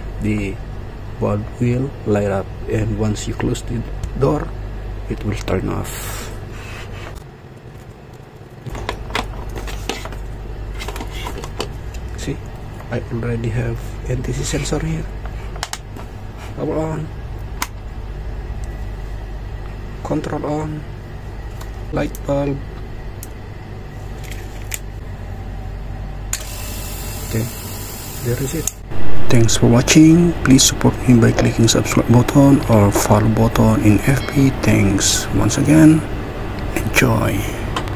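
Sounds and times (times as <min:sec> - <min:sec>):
steady low hum: 0:00.0 - 0:37.9.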